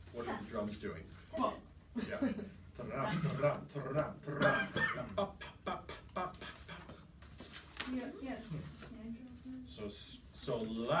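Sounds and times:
man coughing: 0:04.3 - 0:05.2
man clearing his throat: 0:04.3 - 0:05.6.

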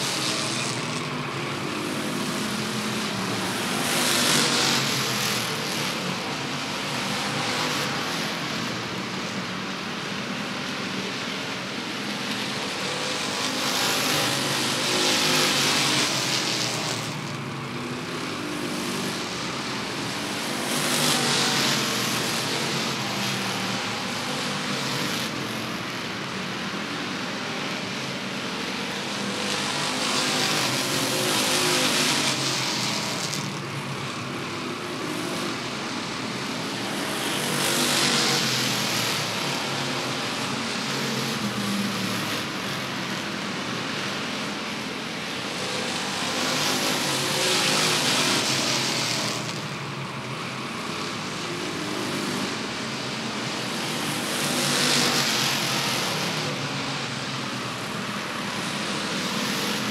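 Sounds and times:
stock cars racing: 0:00.0 - 0:59.9.

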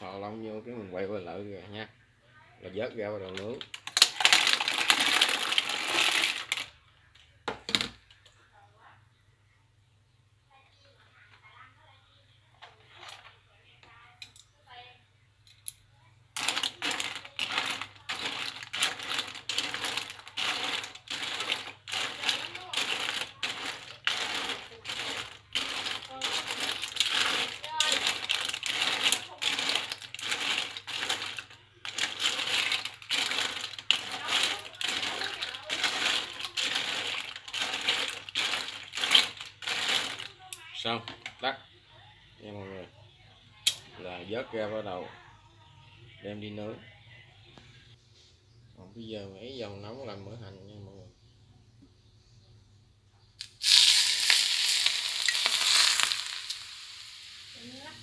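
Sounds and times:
shells clattering in a metal pot: 0:03.3 - 0:06.7, 0:16.4 - 0:41.4, 0:53.4 - 0:58.0.

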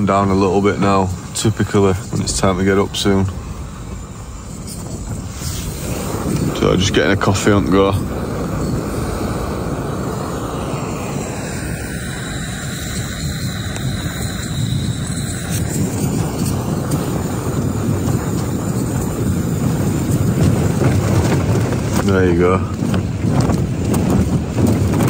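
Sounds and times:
gas stove burning: 0:00.0 - 0:25.0
wind rumbling on microphone: 0:00.0 - 0:25.0.

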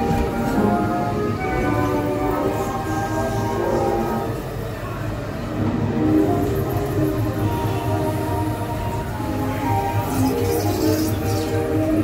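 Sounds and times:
dark ride soundtrack music: 0:00.0 - 0:12.0
ride vehicle rumbling on track: 0:00.0 - 0:12.0.

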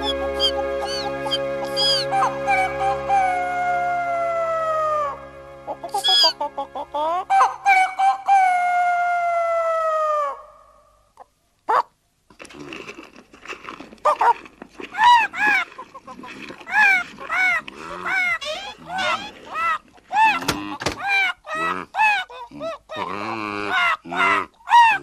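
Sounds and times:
low musical drone: 0:00.0 - 0:08.3
voice calling: 0:00.0 - 0:10.7, 0:14.9 - 0:25.0
cartoon rooster crowing: 0:00.4 - 0:05.2, 0:05.9 - 0:06.4, 0:07.3 - 0:10.8.

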